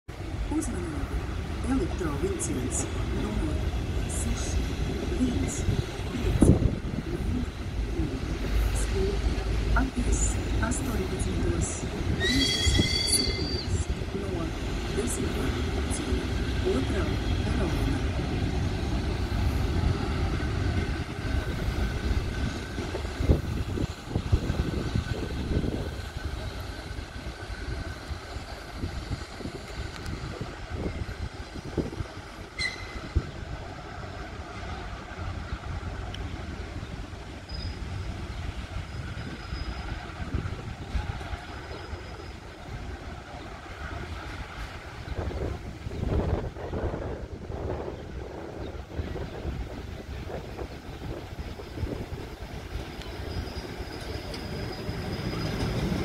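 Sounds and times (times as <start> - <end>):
train wheels rumbling on rails: 0.1 - 56.0.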